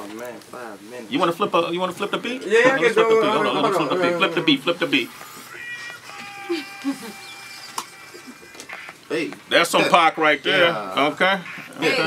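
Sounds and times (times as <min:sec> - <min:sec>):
held synth tones: 0:05.0 - 0:09.0.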